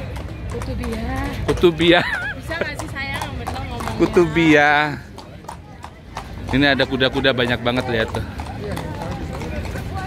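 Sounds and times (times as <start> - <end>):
crowd chatter: 0.0 - 10.0
hooves clip-clopping on stone: 0.0 - 10.0.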